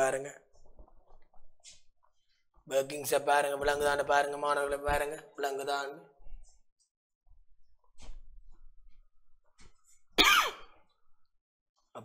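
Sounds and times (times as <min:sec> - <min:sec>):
short cough: 0:10.2 - 0:10.7.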